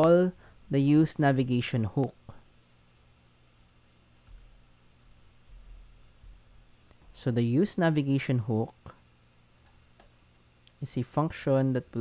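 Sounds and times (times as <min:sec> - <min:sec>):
low steady hum: 0:00.0 - 0:12.0
computer keyboard keystrokes: 0:04.2 - 0:04.5.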